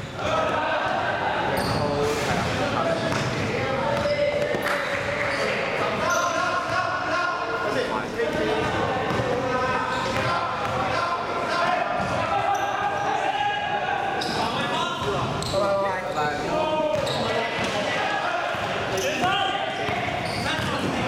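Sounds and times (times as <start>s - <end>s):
players calling out: 0.0s - 21.0s
basketball bouncing on court floor: 3.1s - 4.7s, 8.3s - 9.4s, 18.5s - 21.0s.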